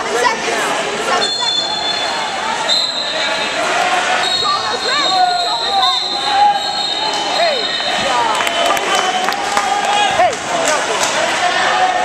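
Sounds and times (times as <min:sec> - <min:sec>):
indistinct voices in a hall: 0:00.0 - 0:12.0.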